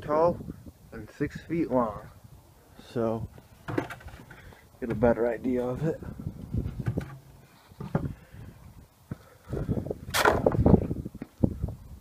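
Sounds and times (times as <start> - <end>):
knocks and handling sounds: 3.5 - 5.8, 6.6 - 8.2.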